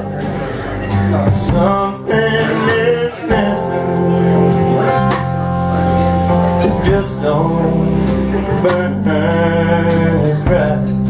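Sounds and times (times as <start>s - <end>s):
live band playing instrumental: 0.0s - 11.0s.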